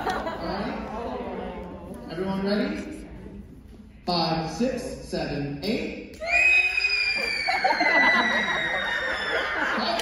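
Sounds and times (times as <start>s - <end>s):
audience laughter: 0.0s - 1.3s, 7.5s - 10.0s.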